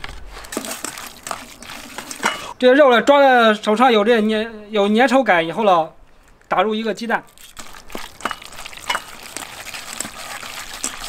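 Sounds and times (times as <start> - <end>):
hand mixing meat in steel bowl: 0.0 - 2.6, 7.3 - 11.0.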